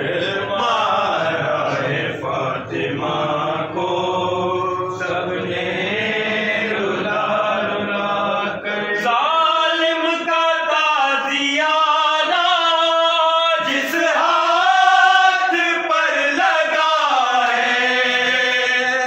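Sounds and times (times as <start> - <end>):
men chanting together: 0.0 - 19.0.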